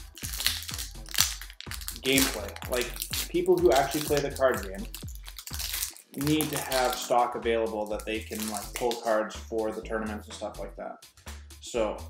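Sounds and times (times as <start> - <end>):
foil wrapper crinkling: 0.0 - 9.2
background music: 0.0 - 12.0.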